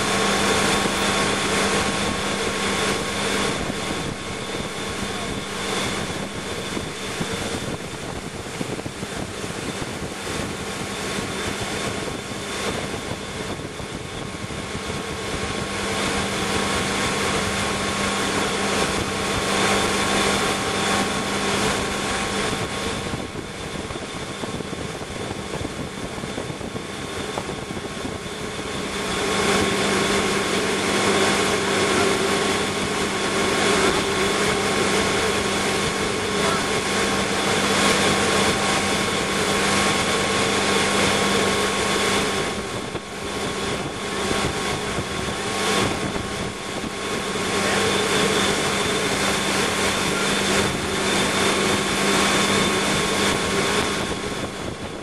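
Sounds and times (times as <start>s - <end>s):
boat engine running: 0.0s - 55.0s
rush of boat wake: 0.0s - 55.0s
wind noise: 0.0s - 55.0s.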